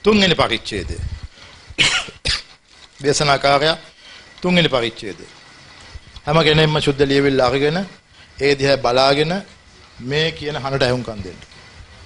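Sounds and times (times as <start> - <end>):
man coughing into microphone: 1.8 - 2.6.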